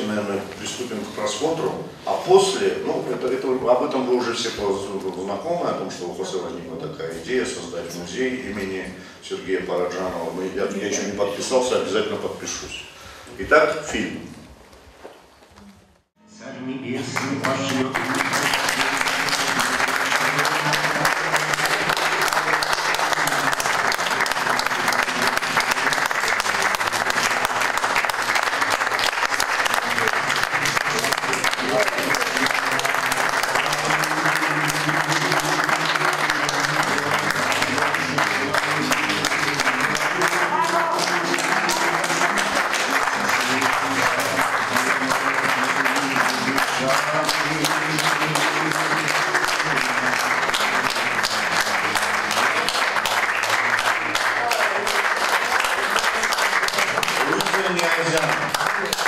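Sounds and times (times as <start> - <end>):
music playing: 16.2 - 54.8
audience applauding: 17.0 - 59.0.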